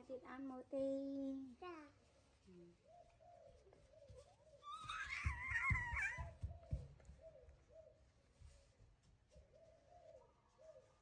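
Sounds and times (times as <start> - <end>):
soft wavering monkey calls: 3.0 - 6.4
baby monkey squealing cry: 4.6 - 6.3.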